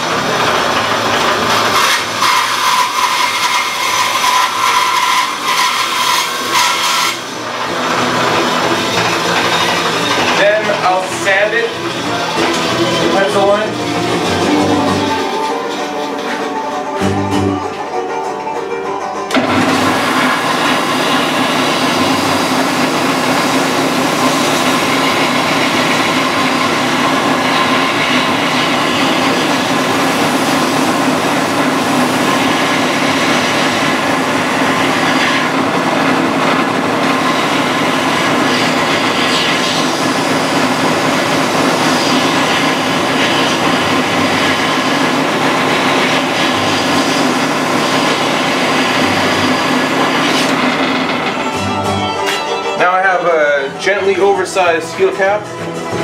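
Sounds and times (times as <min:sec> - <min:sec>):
belt sander running: 0:00.0 - 0:17.8, 0:19.3 - 0:56.0.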